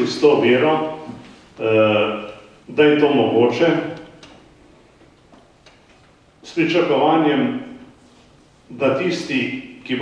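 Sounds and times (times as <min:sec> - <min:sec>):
quiet hall noise: 0:00.0 - 0:10.0.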